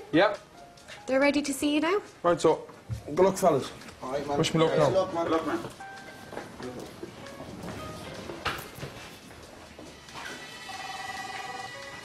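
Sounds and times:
held electronic tones: 10.0s - 12.0s.

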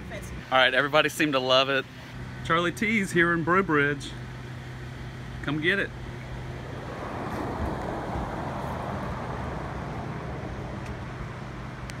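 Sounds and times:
steady low hum: 4.1s - 12.0s
vehicle passing: 4.5s - 12.0s.

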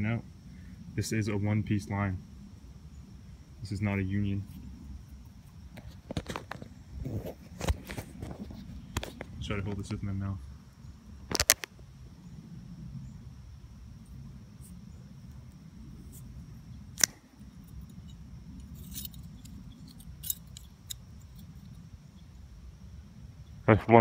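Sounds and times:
low steady rumble: 0.0s - 24.0s.

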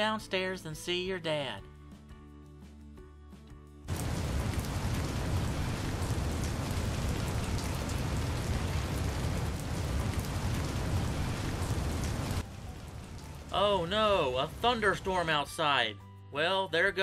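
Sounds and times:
low rumble: 3.9s - 13.5s
heavy rain hiss: 3.9s - 15.6s.

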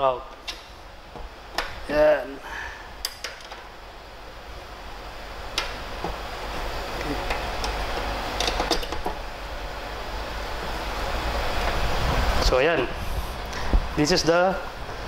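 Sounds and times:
steady rushing noise: 9.1s - 15.0s.

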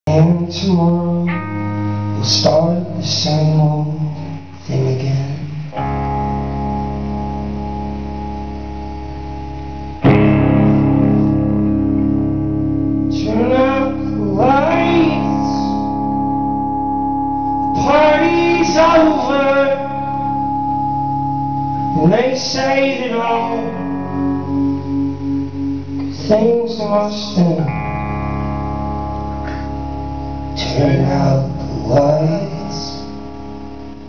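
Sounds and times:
guitar chord ringing: 0.1s - 34.0s.

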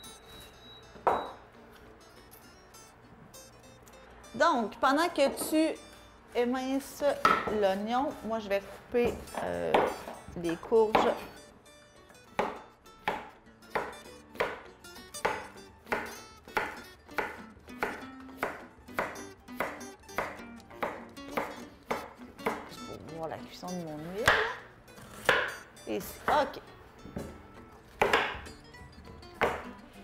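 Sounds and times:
background music: 0.0s - 30.0s
knife chopping on cutting board: 7.2s - 7.6s, 12.4s - 14.6s, 24.2s - 25.6s, 28.0s - 28.5s, 29.4s - 29.7s.

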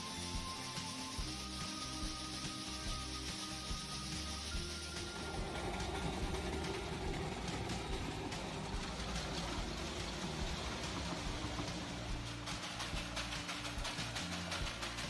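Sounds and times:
steam train running: 0.0s - 15.0s.

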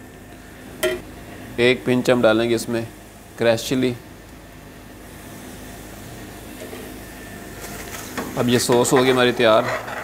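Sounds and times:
gas range hum and hiss: 0.0s - 10.0s
spoon scraping a pan: 7.6s - 10.0s.

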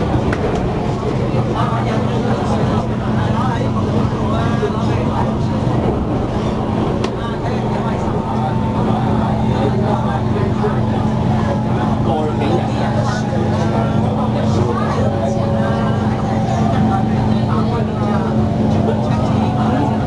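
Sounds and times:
faint murmuring voices: 0.0s - 20.0s
low traction hum: 0.0s - 20.0s
train wheels rumbling on track: 0.0s - 20.0s.

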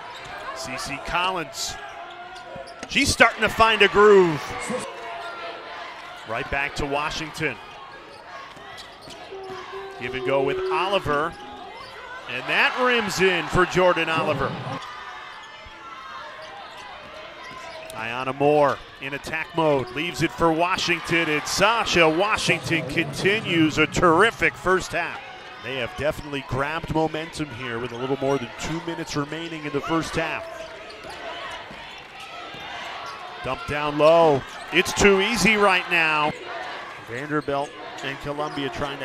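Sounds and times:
arena crowd murmur: 0.0s - 39.0s
low crowd murmur: 7.2s - 18.0s
faint voices: 8.5s - 14.8s, 19.1s - 26.4s.

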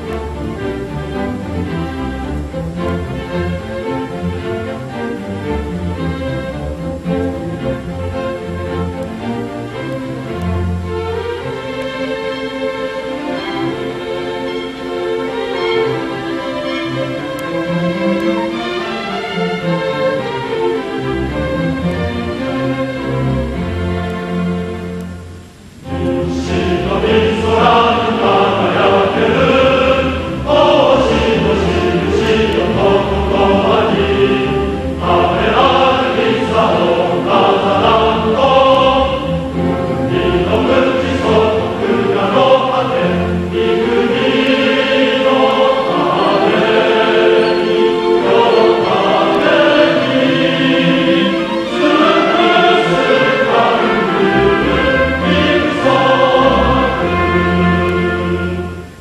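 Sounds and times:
choir singing: 0.0s - 59.0s
orchestral accompaniment: 0.0s - 59.0s.

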